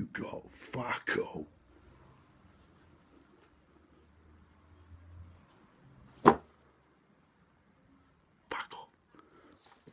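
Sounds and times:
man whispering: 0.0 - 1.6, 8.4 - 9.5.

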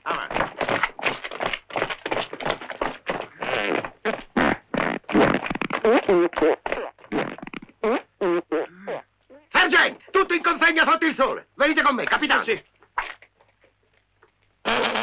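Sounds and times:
comic fart noises: 3.3 - 9.5, 12.9 - 13.7, 14.6 - 15.0.

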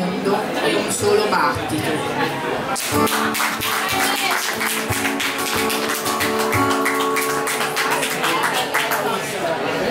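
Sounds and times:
acoustic and electric guitars: 0.9 - 9.7
people clapping along: 2.8 - 9.3.

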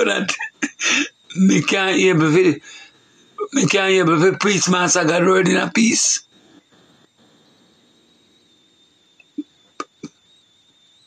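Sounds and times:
man's voice: 0.0 - 2.7, 3.4 - 6.2
faint background hiss: 0.0 - 11.0
high-pitched whine: 0.0 - 11.0.

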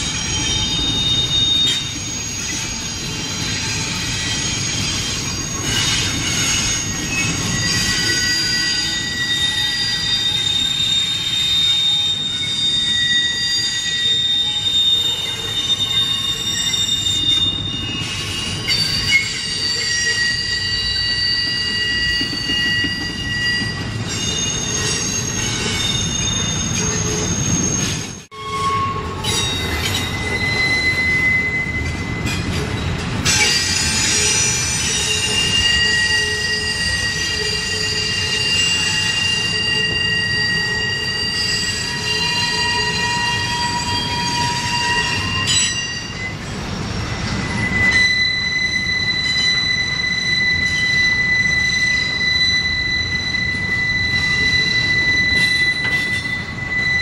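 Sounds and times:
train wheels squealing on rail: 0.0 - 57.0.

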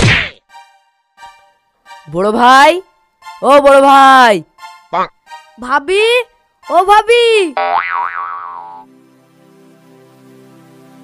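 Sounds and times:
soft background music: 0.4 - 7.8, 8.4 - 11.0
cartoon boing: 7.6 - 8.8.

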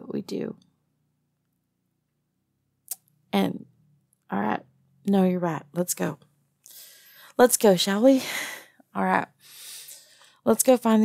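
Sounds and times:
woman's sharp breath: 6.7 - 7.3, 9.4 - 10.4.

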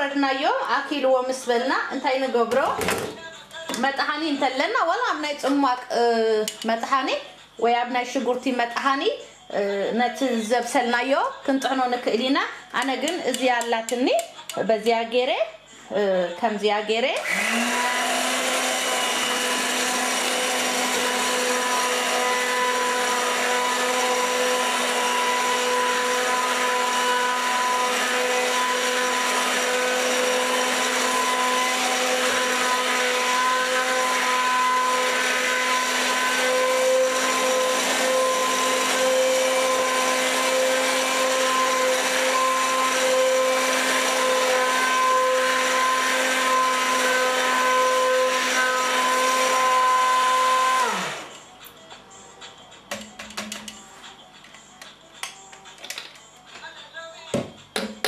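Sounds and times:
immersion blender motor whine: 17.2 - 51.5.

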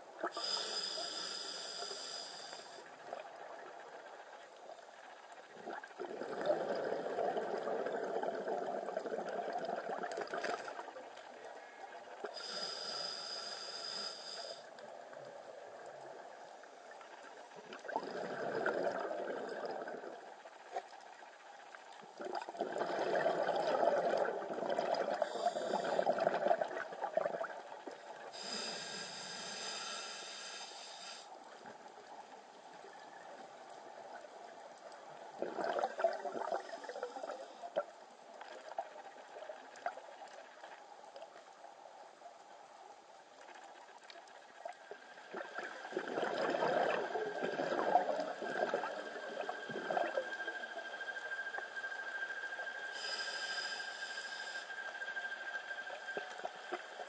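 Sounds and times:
regulator inhalation hiss: 0.4 - 2.9, 12.4 - 14.7, 25.1 - 26.2, 28.4 - 31.4, 52.9 - 55.1
gurgling bubble bursts: 5.6 - 10.6, 17.8 - 20.2, 22.2 - 27.5, 35.4 - 37.0, 45.3 - 50.2.

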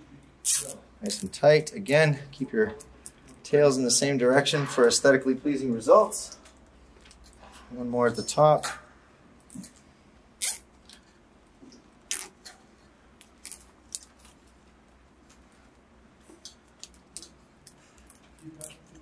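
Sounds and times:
zip tie zipping and clicking: 0.4 - 0.8, 10.4 - 10.7, 12.1 - 12.4.

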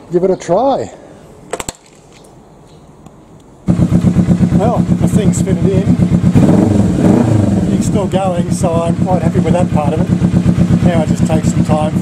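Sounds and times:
motorcycle engine starting and running: 3.6 - 12.0.

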